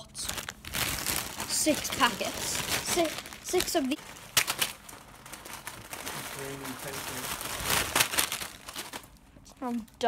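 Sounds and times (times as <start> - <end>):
crisp packets crinkling: 0.0 - 10.0.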